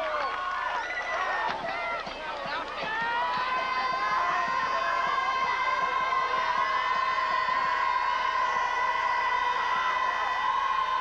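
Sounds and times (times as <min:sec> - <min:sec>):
crowd voices calling out: 0:00.0 - 0:11.0.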